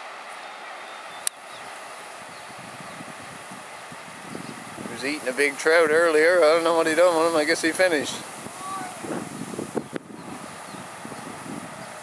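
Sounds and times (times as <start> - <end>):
wind buffeting microphone: 1.4 - 12.0.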